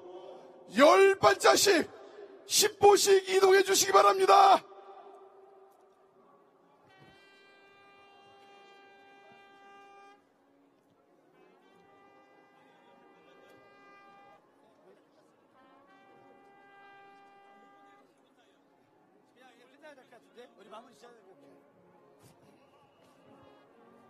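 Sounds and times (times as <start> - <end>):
faint horn notes: 6.8 - 14.6, 21.9 - 24.0.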